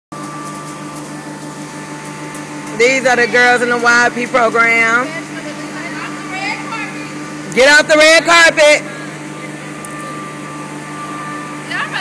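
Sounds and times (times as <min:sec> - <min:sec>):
steady mechanical hum: 0:00.1 - 0:12.0.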